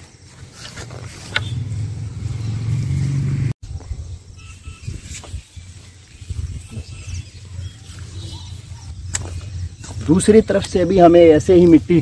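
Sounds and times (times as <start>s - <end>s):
hand hoe scraping soil: 0.0s - 1.6s
loud low engine rumble: 0.6s - 3.6s.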